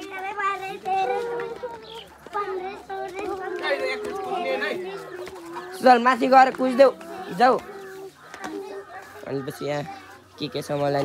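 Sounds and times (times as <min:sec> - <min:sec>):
quiet talk: 0:00.0 - 0:11.0.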